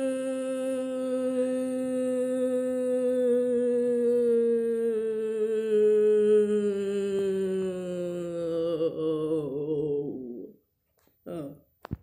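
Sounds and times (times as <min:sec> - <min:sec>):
person humming long note: 0:00.0 - 0:10.5.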